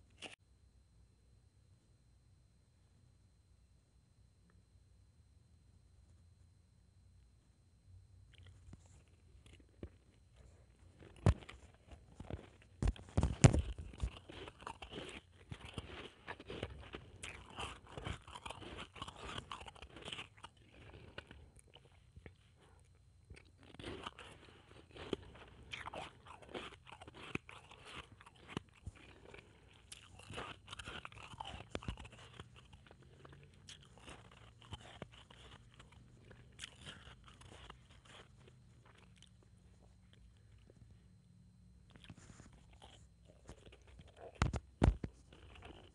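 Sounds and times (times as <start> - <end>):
ice crunched in mouth: 10.9 - 22.4, 23.3 - 39.3, 41.9 - 45.9.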